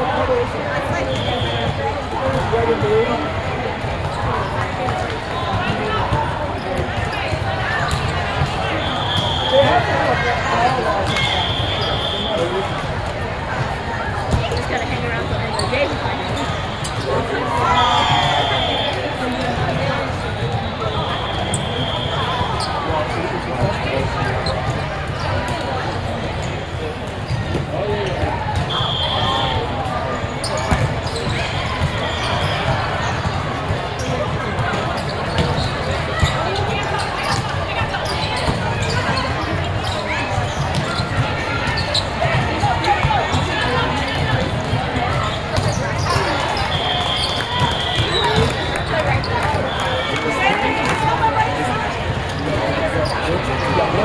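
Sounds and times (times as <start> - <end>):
babble of many voices: 0.0 - 54.0
short whistle blasts: 8.8 - 10.0, 11.1 - 12.6, 17.6 - 19.0, 20.9 - 22.7, 28.7 - 29.7, 46.4 - 48.9.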